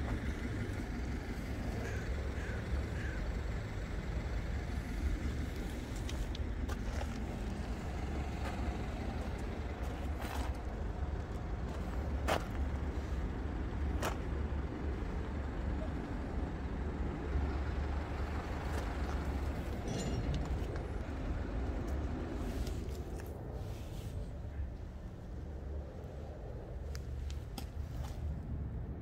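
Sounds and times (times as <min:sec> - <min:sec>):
low outdoor rumble: 0:00.0 - 0:29.0.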